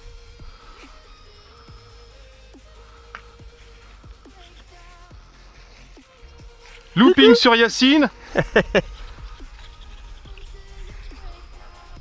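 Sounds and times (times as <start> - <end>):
faint background music: 0.0 - 12.0
man laughing: 7.0 - 9.9.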